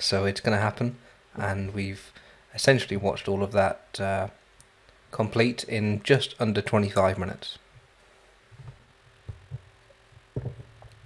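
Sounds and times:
faint steady hum: 0:00.0 - 0:11.0
soft low thuds: 0:08.5 - 0:11.0.

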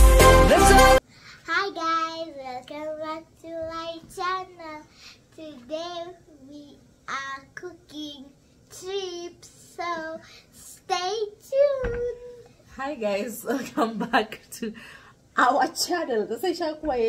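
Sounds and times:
girl singing unaccompanied: 0:01.4 - 0:12.5.

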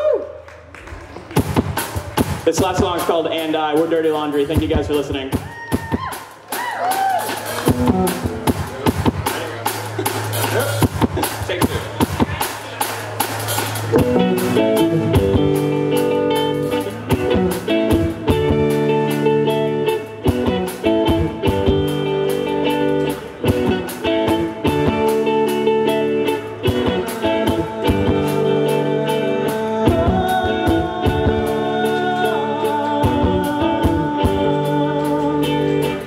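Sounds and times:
drum kit beat: 0:00.9 - 0:36.0
electric guitar: 0:05.3 - 0:36.0
electric bass: 0:07.2 - 0:36.0.

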